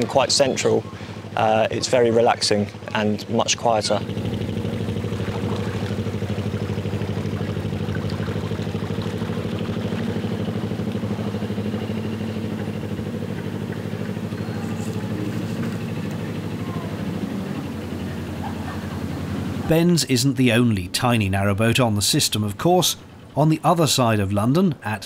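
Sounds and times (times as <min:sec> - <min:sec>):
boat diesel engine chugging: 0:00.0 - 0:25.0.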